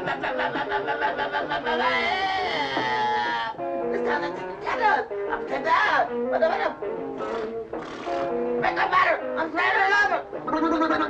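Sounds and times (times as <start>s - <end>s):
man wailing into microphone: 0.0s - 3.6s, 9.7s - 11.0s.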